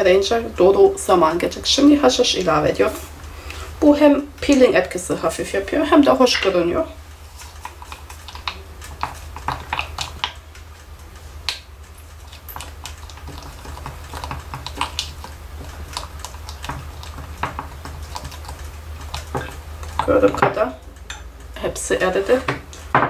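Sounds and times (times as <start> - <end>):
stick tapping glass jug: 12.4 - 21.2.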